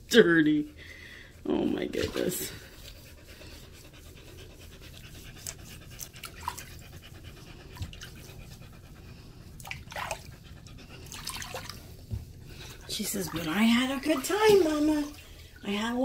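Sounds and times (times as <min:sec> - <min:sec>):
dog panting: 0:00.0 - 0:16.0
bathwater splashing: 0:01.6 - 0:03.0, 0:04.9 - 0:08.5, 0:09.2 - 0:16.0.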